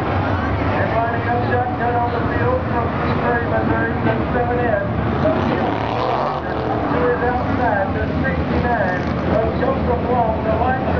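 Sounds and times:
race car engines rumbling: 0.0s - 10.9s
people talking: 0.4s - 10.9s.

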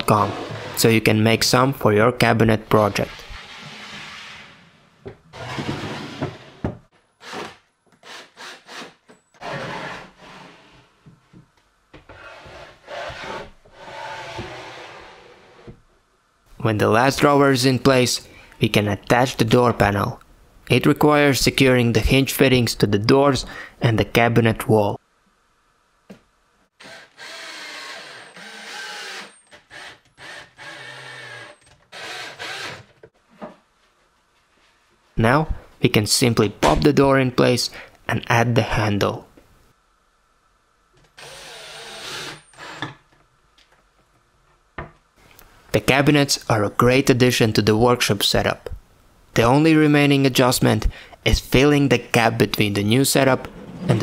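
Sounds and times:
wooden drawers sliding: 5.3s - 6.9s, 53.4s - 54.0s
cordless drill driving screws: 26.8s - 32.9s, 41.2s - 43.0s.

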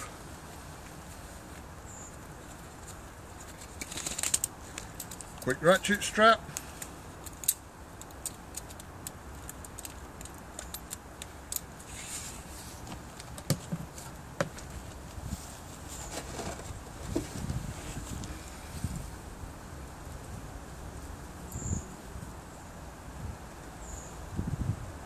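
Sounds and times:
strap handling noise: 2.4s - 15.2s.

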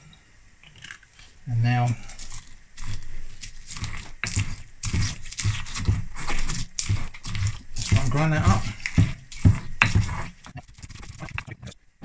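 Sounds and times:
gritty scraping strokes: 0.8s - 11.8s
stone pestle grinding in mortar: 1.9s - 11.8s.

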